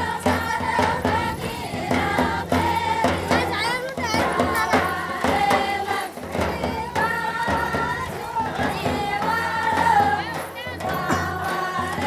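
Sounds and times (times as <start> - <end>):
drum beating a steady rhythm: 0.0 - 12.0
women singing a folk song: 0.0 - 12.0.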